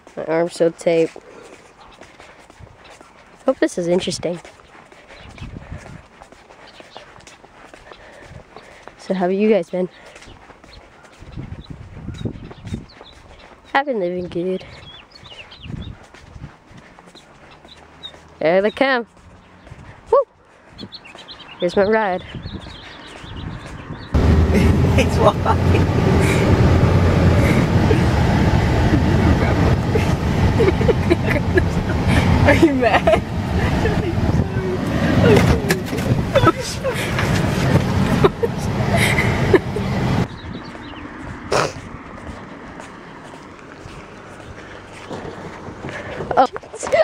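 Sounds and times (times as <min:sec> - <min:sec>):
footsteps on concrete: 0:00.0 - 0:24.3, 0:29.8 - 0:47.0
outdoor background noise: 0:00.0 - 0:47.0
car engine and road rumble: 0:14.4 - 0:21.6, 0:22.3 - 0:47.0.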